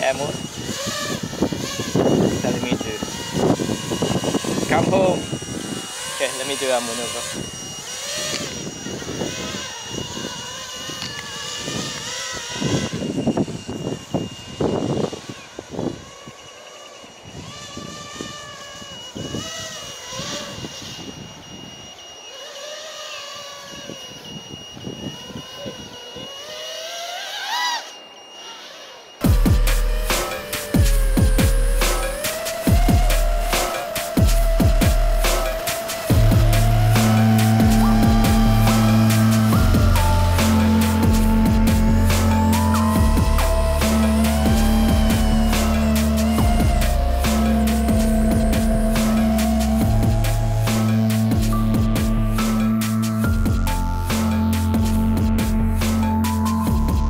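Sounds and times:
quadcopter motors whining: 0:00.0 - 0:57.0
electronic music with heavy beat: 0:29.2 - 0:57.0.

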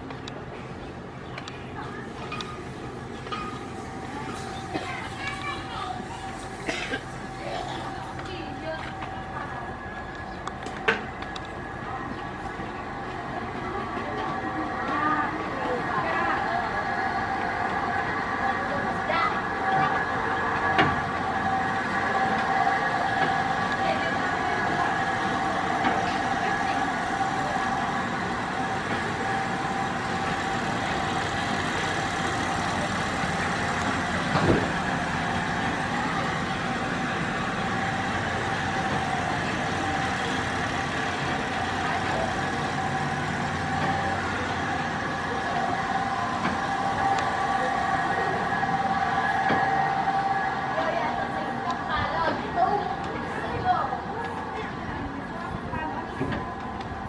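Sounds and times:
train mechanical hum: 0:00.0 - 0:57.0.

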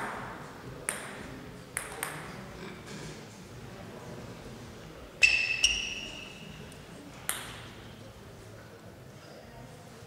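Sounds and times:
table tennis ball pinging: 0:00.0 - 0:02.3, 0:07.2 - 0:07.8
table tennis ball click: 0:00.9 - 0:01.2, 0:01.8 - 0:02.3, 0:07.3 - 0:07.6.

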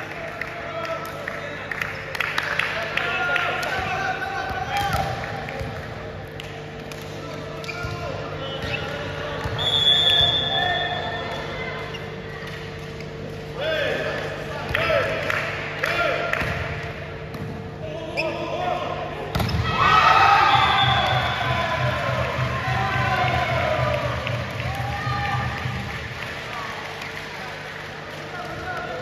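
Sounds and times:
volleyball strike: 0:16.3 - 0:17.6, 0:19.3 - 0:23.5
players shouting: 0:17.8 - 0:25.6.

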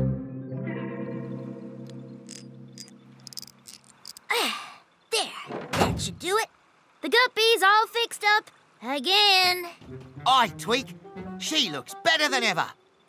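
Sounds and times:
held musical chord: 0:00.0 - 0:03.2, 0:09.8 - 0:13.0
thump: 0:05.5 - 0:06.2.

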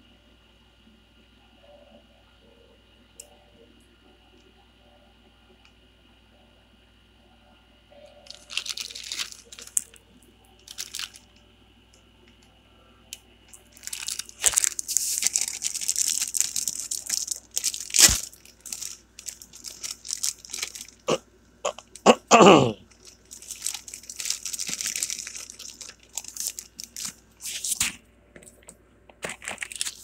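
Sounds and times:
plastic packaging crinkling: 0:08.2 - 0:11.4, 0:13.5 - 0:22.1, 0:22.8 - 0:30.0.

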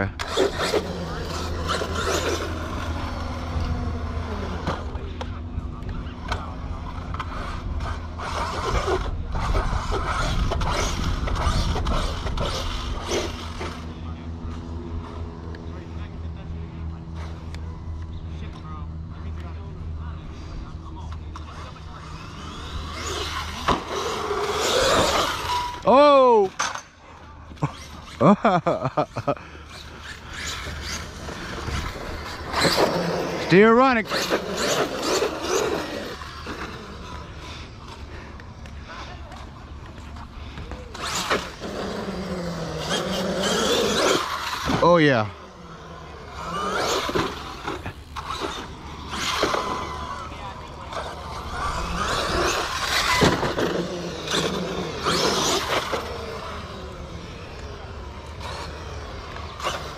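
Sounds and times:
electric motor whining: 0:00.0 - 0:15.8, 0:21.4 - 0:26.4, 0:29.2 - 0:38.8, 0:39.7 - 0:59.9.

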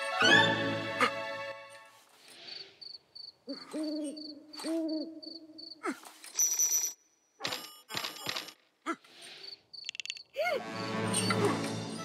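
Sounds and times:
owl hooting: 0:03.5 - 0:05.6.

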